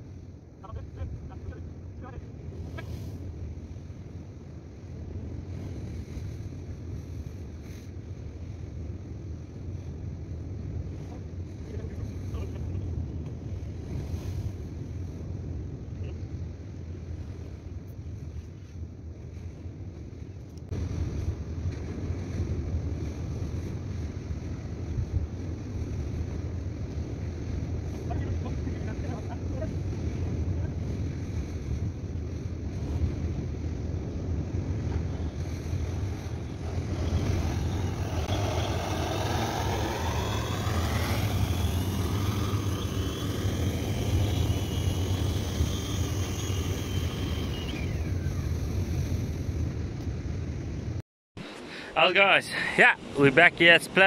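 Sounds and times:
wind rumbling on microphone: 0.0s - 51.7s
surf washing: 20.8s - 49.7s, 51.4s - 54.0s
pitched sliding tones: 35.3s - 48.6s.

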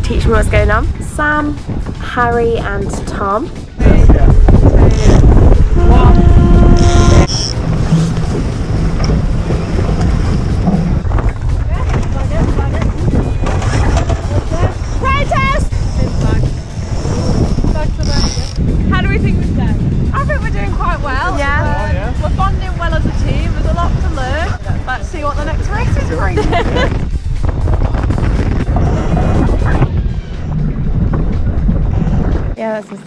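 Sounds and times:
water rushing along hull: 0.0s - 33.0s
wind buffeting microphone: 0.0s - 33.0s.

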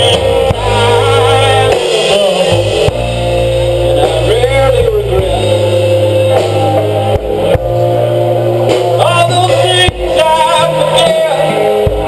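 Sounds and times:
distorted electric guitar and bass: 0.0s - 12.0s.

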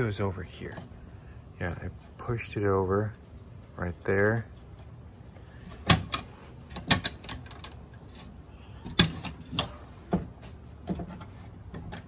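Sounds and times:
metal brackets clicking: 5.7s - 9.8s.

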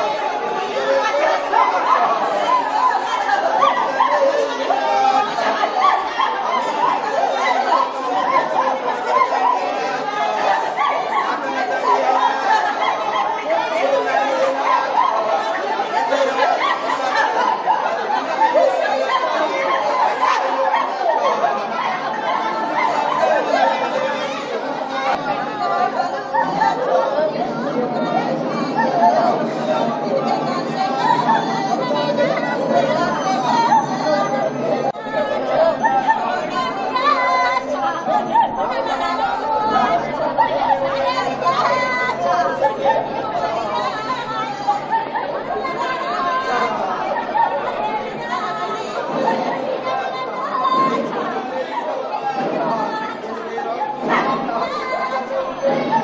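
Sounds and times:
crowd chatter: 0.0s - 56.0s.

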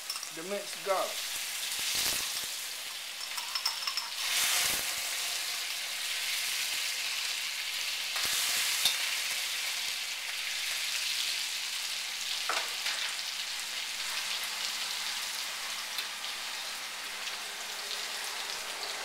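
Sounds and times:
garlic sizzling in oil: 0.0s - 19.0s.

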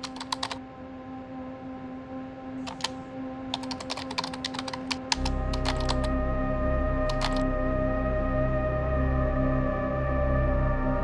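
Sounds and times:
keyboard typing: 0.0s - 0.6s, 2.6s - 6.1s, 7.1s - 7.4s
ambient synth drone: 4.5s - 11.0s.

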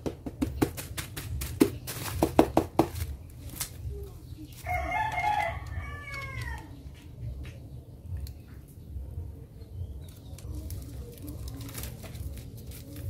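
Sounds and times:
sharp knocks on a box: 0.0s - 3.1s
rooster crowing: 4.7s - 6.7s.

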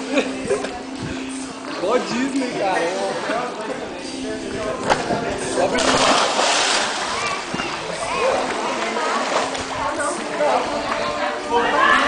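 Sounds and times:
water sloshing: 4.8s - 10.4s
big splash into pool: 5.8s - 7.5s.

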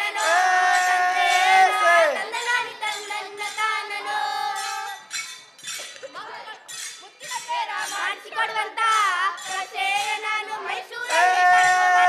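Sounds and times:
short metallic jingles: 4.5s - 8.2s.

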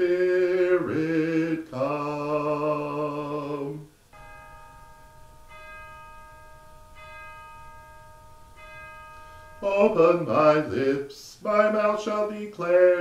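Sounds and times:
bell ringing: 4.1s - 12.0s.

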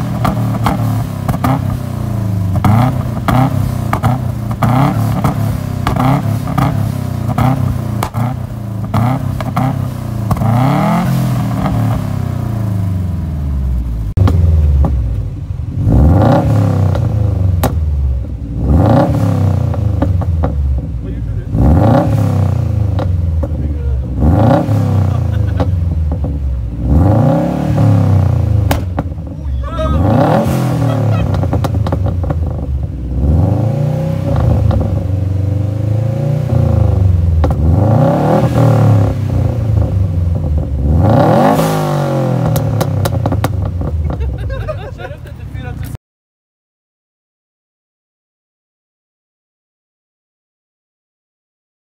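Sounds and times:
car engine revving: 0.0s - 46.0s.

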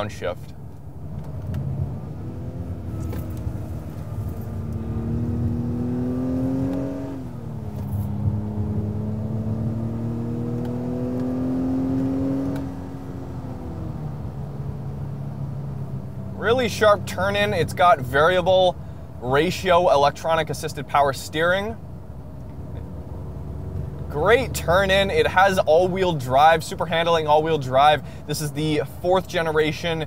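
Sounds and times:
car engine accelerating: 0.7s - 19.2s, 21.8s - 28.3s.

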